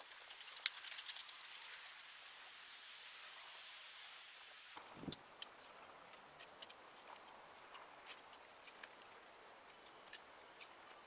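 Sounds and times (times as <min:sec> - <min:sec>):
soft ticks: 0:05.1 - 0:11.0.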